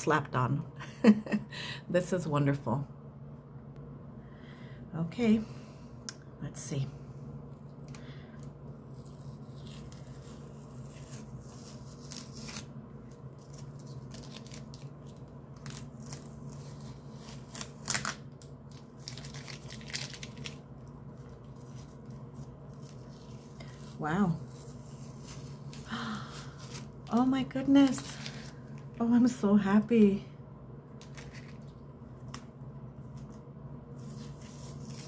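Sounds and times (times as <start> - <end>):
steady low hum: 0.0 - 35.0
tape ripping off paper: 8.9 - 20.6, 34.0 - 35.0.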